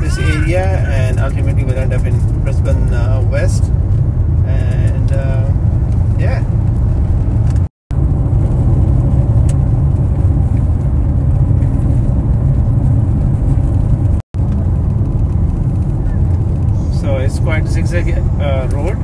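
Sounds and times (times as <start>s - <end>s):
car cabin road and engine rumble: 0.0s - 19.0s.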